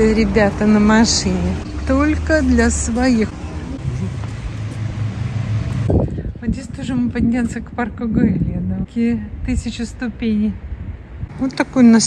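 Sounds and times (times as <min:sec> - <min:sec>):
vehicle engine running: 0:00.0 - 0:06.1
road noise: 0:00.0 - 0:12.0.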